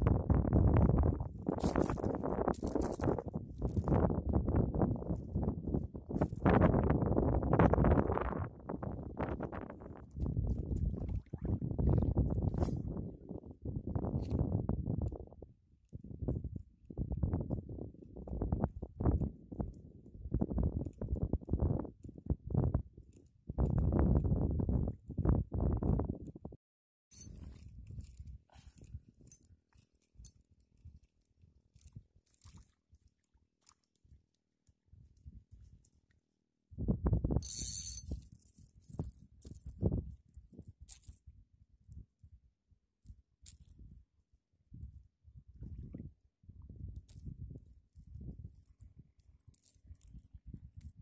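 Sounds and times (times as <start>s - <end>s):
wind buffeting microphone: 0.0s - 26.6s, 36.7s - 38.3s, 44.7s - 49.1s.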